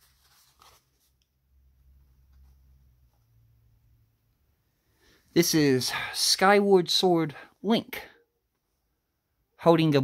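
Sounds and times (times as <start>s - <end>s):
faint paper rustles: 0.0s - 3.4s.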